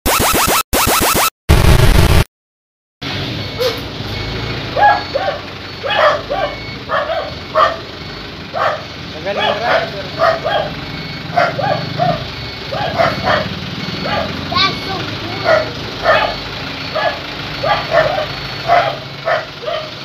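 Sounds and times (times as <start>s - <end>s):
dog barking: 4.8s - 7.9s, 8.5s - 14.4s, 15.4s - 20.0s.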